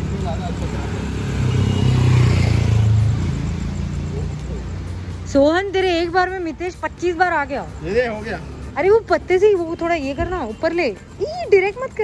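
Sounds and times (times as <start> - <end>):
vehicle engine hum: 0.0 - 12.0.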